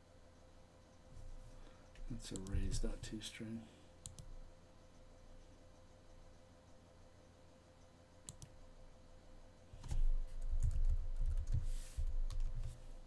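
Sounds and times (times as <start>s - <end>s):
computer keyboard typing: 4.0s - 4.3s, 8.2s - 8.6s, 9.8s - 12.8s.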